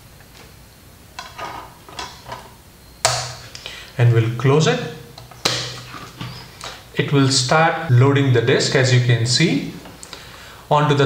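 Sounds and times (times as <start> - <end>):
plastic lid snapping shut: 5.2 - 6.3.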